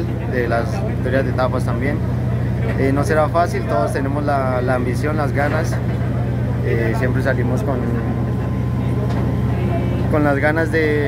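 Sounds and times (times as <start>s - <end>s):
low motor drone with pulse: 0.0s - 11.0s.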